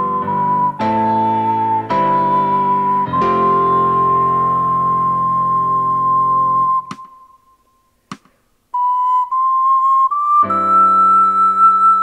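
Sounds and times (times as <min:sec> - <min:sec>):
ocarina melody: 0:00.0 - 0:07.9, 0:08.7 - 0:12.0.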